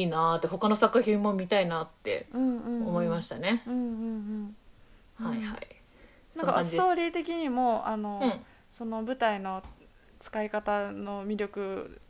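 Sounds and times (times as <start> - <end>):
woman speaking: 0.0 - 4.4, 6.4 - 12.0
woman humming in agreement: 2.3 - 3.0, 3.6 - 4.6.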